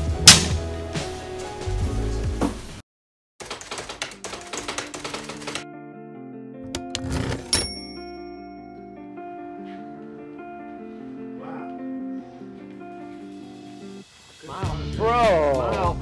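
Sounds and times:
background music: 0.0 - 2.8, 3.7 - 16.0
typewriter keys clattering: 3.4 - 5.6.

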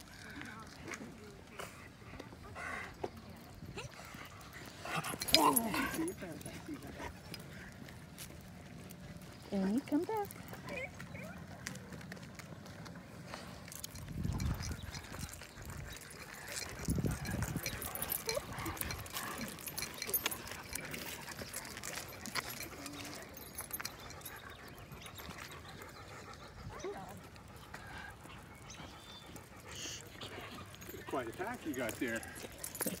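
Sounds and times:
footsteps on pavement: 0.0 - 33.0
dog collar chains jingling: 3.4 - 33.0.

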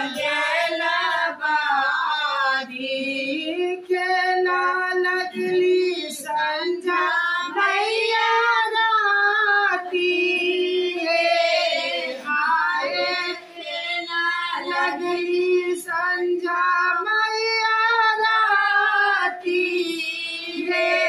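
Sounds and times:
women singing unaccompanied: 0.0 - 21.0.

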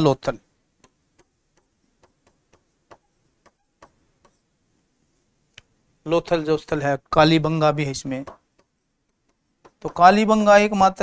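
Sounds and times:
pen tip tapping on writing board: 0.8 - 4.4.

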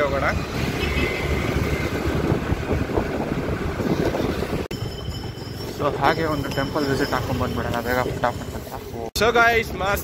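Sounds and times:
wind buffeting microphone: 0.6 - 5.4.

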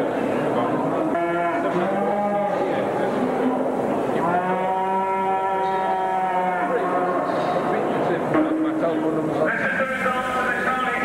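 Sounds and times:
steady background noise: 0.0 - 11.0
cattle mooing: 0.9 - 2.6, 4.2 - 7.2.

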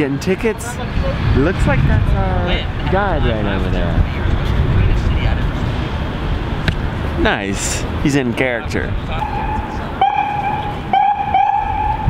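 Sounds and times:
high-pitched horn blasts: 9.2 - 12.0.

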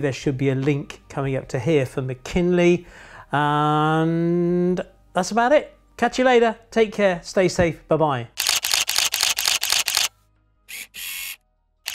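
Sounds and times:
camera shutter clicks: 8.4 - 10.1, 10.7 - 11.9.

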